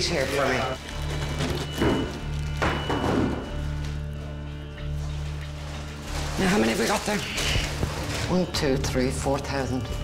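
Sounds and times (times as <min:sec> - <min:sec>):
background music with low tones: 0:00.0 - 0:10.0
cartons thudding on wooden desk: 0:01.8 - 0:03.5.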